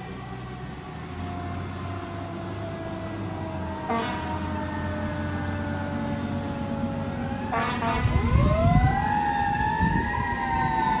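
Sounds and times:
siren wailing: 0:00.0 - 0:11.0
truck and traffic rumble: 0:00.0 - 0:11.0
horn blast: 0:03.9 - 0:04.4, 0:07.5 - 0:08.3.

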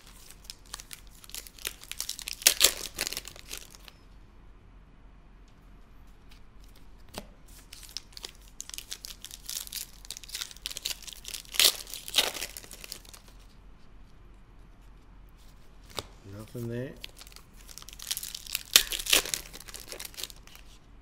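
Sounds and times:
foil wrapper tearing and crinkling: 0:00.0 - 0:04.0, 0:07.5 - 0:13.4, 0:15.9 - 0:20.8
handling cards: 0:00.0 - 0:04.0, 0:06.0 - 0:20.8.

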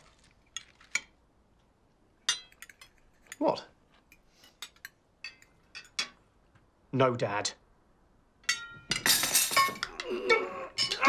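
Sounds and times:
cutlery clinking on crockery: 0:02.3 - 0:06.2, 0:08.5 - 0:11.0.

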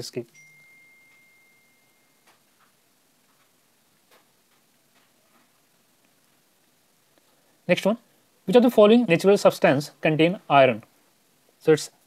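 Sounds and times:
faint high steady tone: 0:00.0 - 0:03.2.

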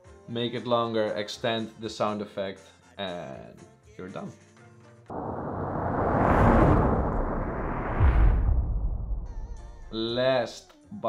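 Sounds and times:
deep impact boom: 0:05.1 - 0:10.2
riser: 0:05.1 - 0:10.2
rushing whoosh: 0:05.1 - 0:10.2.

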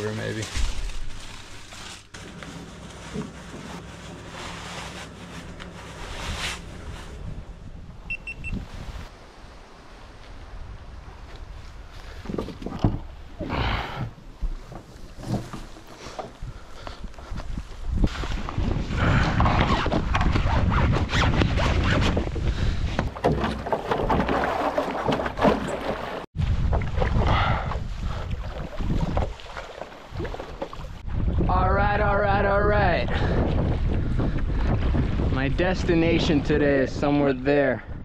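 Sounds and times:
wind buffeting microphone: 0:16.3 - 0:23.2, 0:26.4 - 0:29.5, 0:30.1 - 0:38.0
water splashing around paddle: 0:22.8 - 0:31.1
person talking: 0:31.5 - 0:33.2, 0:35.3 - 0:37.9.

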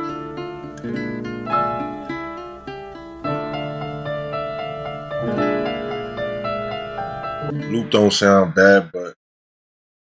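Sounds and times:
sampled melody loop: 0:00.0 - 0:08.3.

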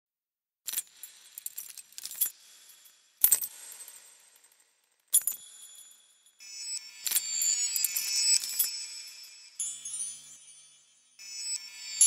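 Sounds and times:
metallic clinks and chimes: 0:00.7 - 0:12.0.

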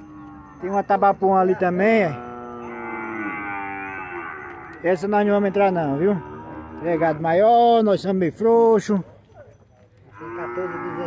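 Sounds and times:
cow mooing: 0:00.0 - 0:00.9, 0:01.7 - 0:07.4, 0:10.1 - 0:11.0.

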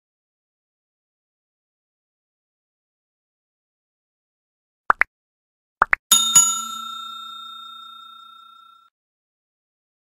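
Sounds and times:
notification bell ding: 0:06.1 - 0:08.9.

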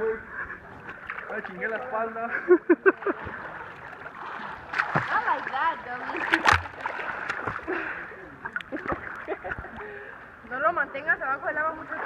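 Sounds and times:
water lapping: 0:00.0 - 0:12.0
swimmer splashing in pool: 0:03.0 - 0:08.0.

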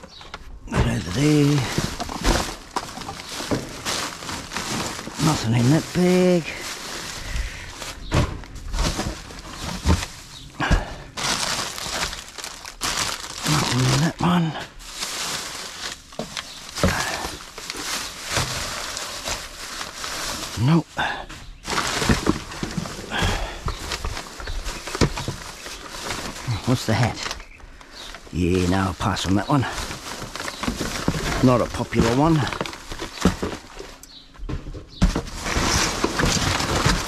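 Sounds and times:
plastic bags rustling: 0:00.0 - 0:34.3, 0:35.0 - 0:37.0.

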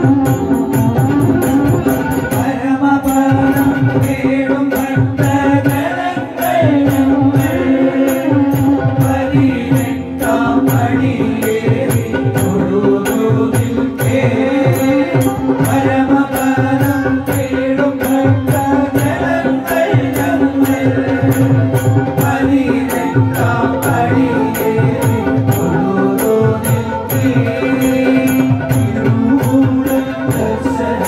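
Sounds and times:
drum beat: 0:00.0 - 0:31.0
keyboard drone: 0:00.0 - 0:31.0
men singing into microphones: 0:00.0 - 0:31.0
metallic percussion strikes: 0:00.0 - 0:31.0.

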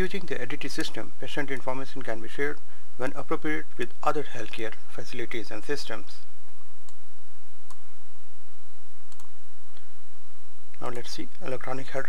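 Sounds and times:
steady low hum: 0:00.0 - 0:12.0
computer mouse clicks: 0:09.1 - 0:09.3.

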